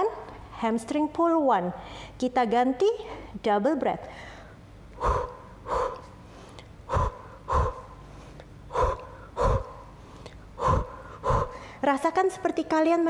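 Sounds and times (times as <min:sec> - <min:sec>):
woman's short sharp breaths: 0:04.1 - 0:11.8.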